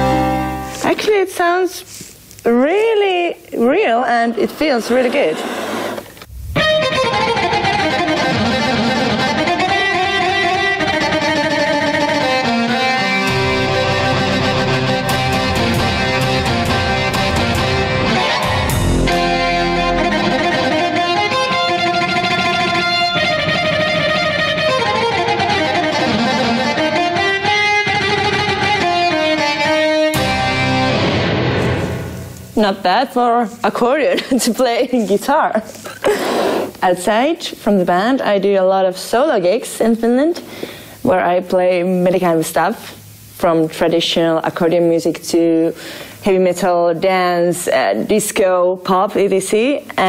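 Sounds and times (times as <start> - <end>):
accordion with electric guitar voice: 0.0 - 0.8, 6.6 - 32.4.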